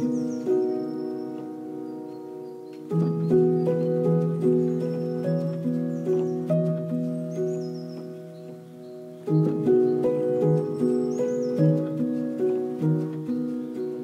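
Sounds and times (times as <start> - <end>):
keyboard chords with ticking percussion: 0.0 - 14.0.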